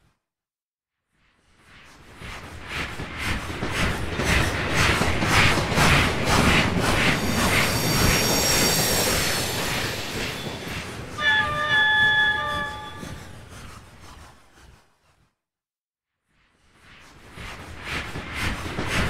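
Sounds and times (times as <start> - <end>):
train wheels clacking: 2.3 - 14.8, 17.6 - 19.0
wheels squealing: 7.2 - 14.2.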